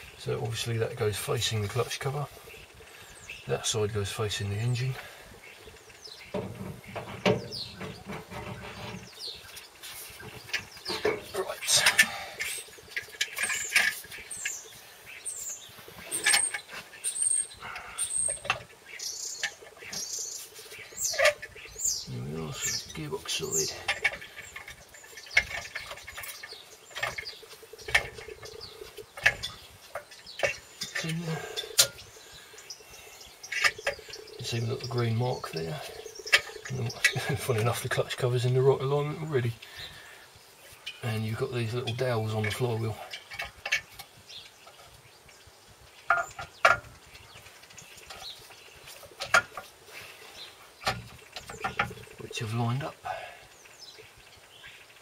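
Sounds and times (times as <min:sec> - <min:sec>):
metal clinks and knocks: 0:10.4 - 0:14.6.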